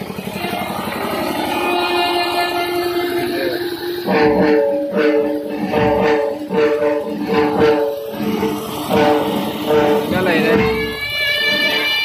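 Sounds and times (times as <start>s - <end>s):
string instrument melody: 0.0s - 12.0s.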